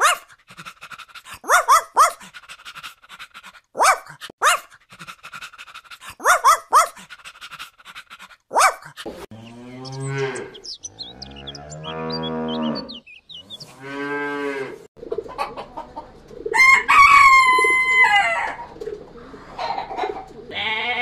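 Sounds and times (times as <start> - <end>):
dog barking: 0.0 - 0.3, 1.4 - 2.3, 3.8 - 4.7, 6.0 - 7.1, 8.5 - 9.0
cow mooing: 9.3 - 14.9.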